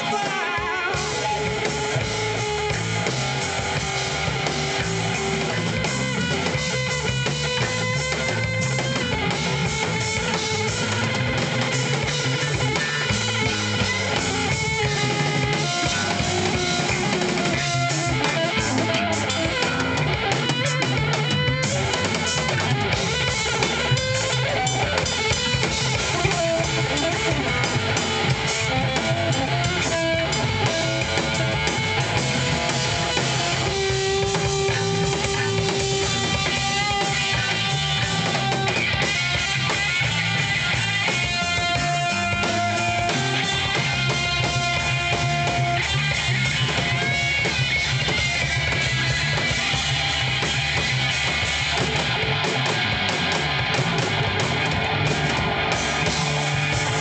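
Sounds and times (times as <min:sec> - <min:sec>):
bass: 0:00.0 - 0:57.0
drum kit: 0:00.0 - 0:57.0
electric guitar: 0:00.0 - 0:57.0.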